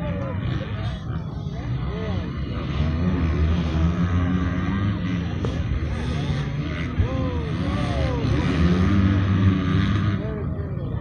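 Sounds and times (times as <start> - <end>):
motorcycle engines revving: 0.0 - 11.0
spectators talking: 0.0 - 11.0.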